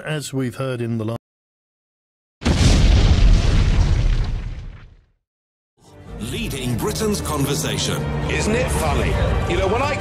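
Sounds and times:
deep explosion boom: 0:02.4 - 0:05.0.

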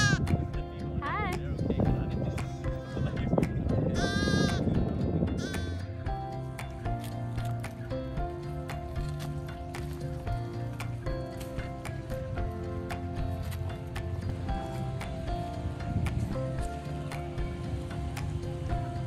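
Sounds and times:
lamb bleating: 0:00.0 - 0:00.3, 0:04.0 - 0:04.7, 0:05.4 - 0:05.8
background music with steady beat: 0:00.0 - 0:19.0.

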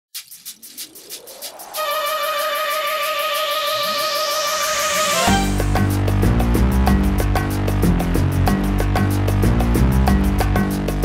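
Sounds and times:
quick ticks: 0:00.1 - 0:04.7
slowly rising tone: 0:00.6 - 0:06.8.

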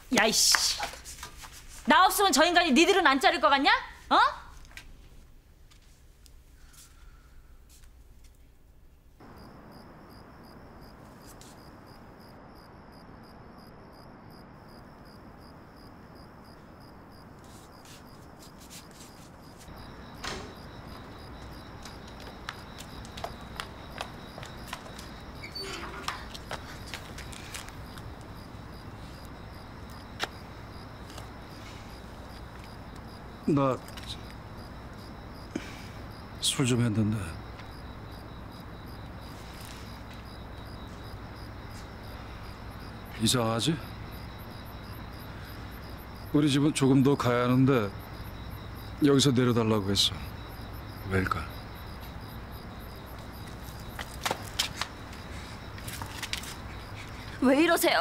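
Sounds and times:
cricket chirping: 0:09.0 - 0:58.0
low steady background hiss: 0:24.8 - 0:53.8.

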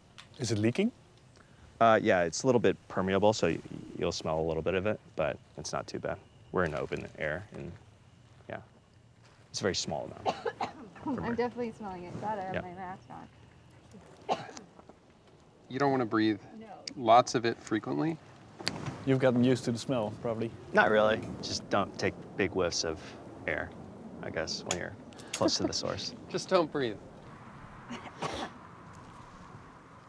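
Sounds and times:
person coughing: 0:10.2 - 0:11.4, 0:14.3 - 0:14.6, 0:27.9 - 0:28.6
person speaking a word: 0:24.7 - 0:26.1.

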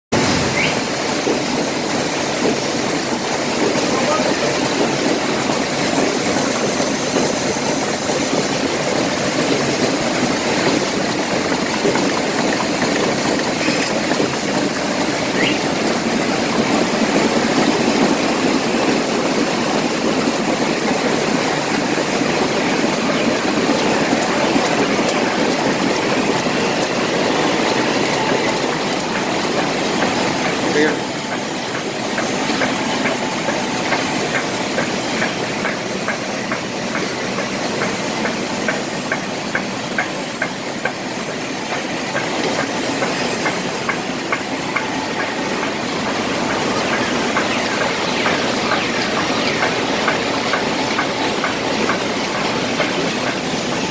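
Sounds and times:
printing press running: 0:00.1 - 0:53.9.

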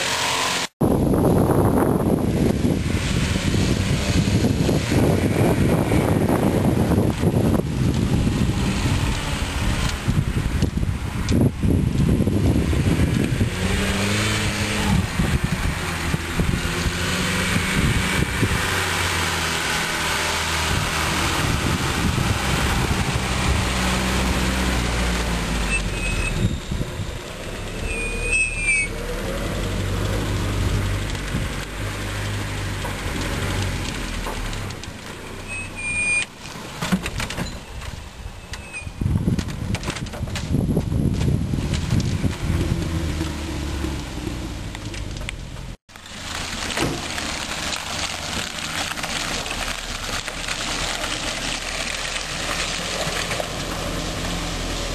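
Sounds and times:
off-road vehicle engine revving: 0:00.0 - 0:00.7, 0:01.3 - 0:36.0, 0:41.1 - 0:54.9
short high squeaks: 0:25.6 - 0:29.0, 0:35.2 - 0:36.4, 0:37.4 - 0:39.1.

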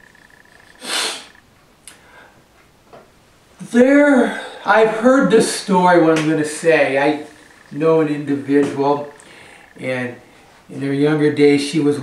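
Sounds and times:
faint electronic whine: 0:00.0 - 0:12.0
man sniffing: 0:00.8 - 0:02.3.

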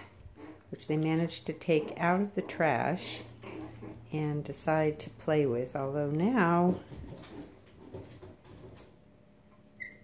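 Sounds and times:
puppies scuffling on tile: 0:05.7 - 0:09.0.

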